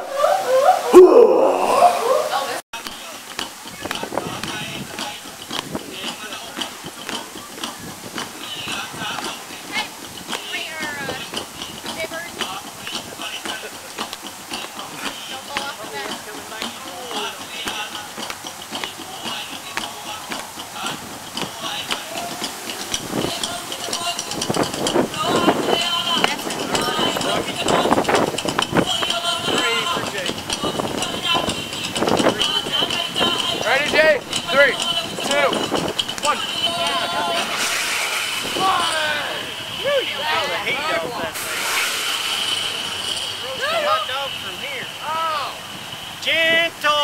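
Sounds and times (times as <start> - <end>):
indistinct voices: 0.0 - 47.0
music: 14.5 - 38.7.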